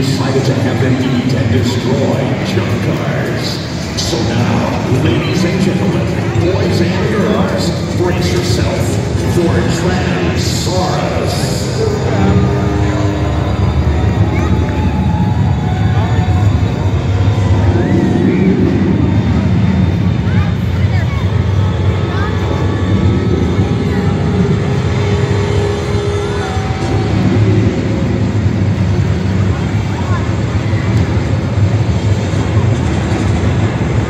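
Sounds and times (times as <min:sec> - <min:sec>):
crowd voices: 0:00.0 - 0:34.0
heavy machine engine running: 0:00.0 - 0:34.0.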